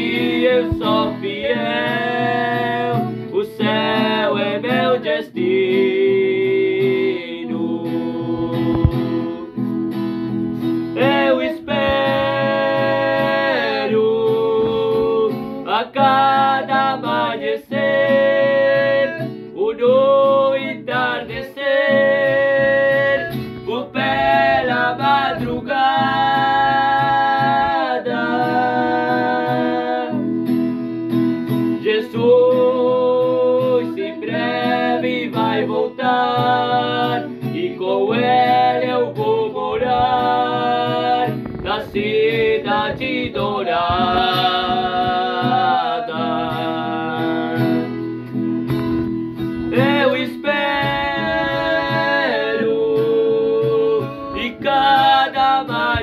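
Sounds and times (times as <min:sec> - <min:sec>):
people singing a hymn: 0:00.0 - 0:09.7, 0:10.8 - 0:30.6, 0:31.8 - 0:48.1, 0:48.8 - 0:56.0
strummed acoustic guitar: 0:00.0 - 0:56.0.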